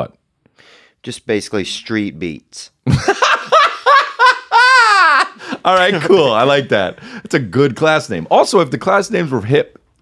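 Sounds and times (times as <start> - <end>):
man laughing hard: 2.9 - 6.6.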